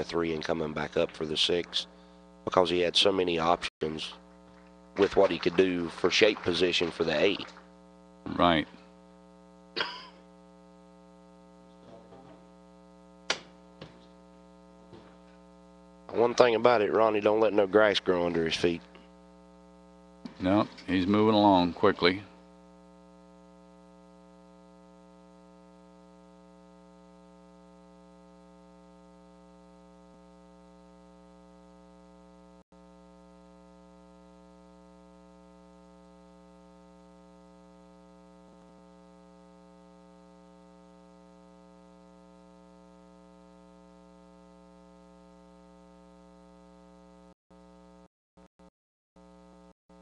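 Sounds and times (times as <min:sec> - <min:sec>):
faint electrical hum: 0:00.0 - 0:48.0.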